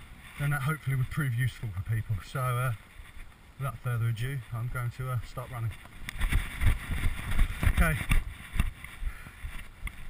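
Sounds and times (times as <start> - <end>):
wind noise on microphone: 5.4 - 10.0.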